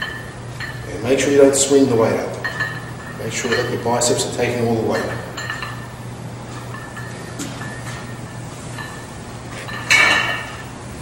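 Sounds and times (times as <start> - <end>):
weight plates clinking: 0.0 - 0.9, 2.3 - 10.6
metal bar clanking down: 9.7 - 10.6.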